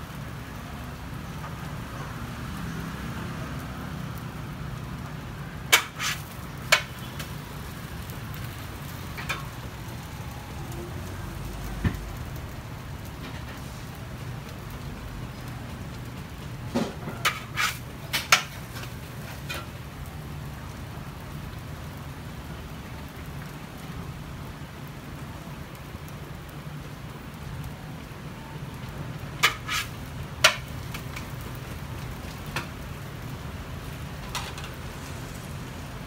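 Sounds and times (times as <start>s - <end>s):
omelette sizzling on a griddle: 0.0s - 36.0s
metal spatulas scraping a griddle: 5.7s - 7.4s, 16.8s - 19.7s, 29.4s - 31.2s.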